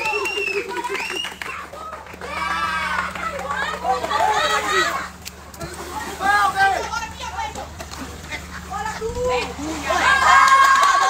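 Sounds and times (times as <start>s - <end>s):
faint steady hum: 0.0s - 11.0s
young people shouting excitedly: 1.6s - 5.2s, 5.9s - 7.7s, 8.7s - 11.0s.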